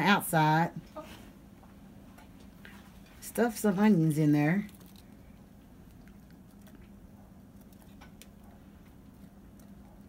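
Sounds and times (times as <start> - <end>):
steady low hum: 0.0 - 10.0
soft clicks and squishes: 4.6 - 10.0.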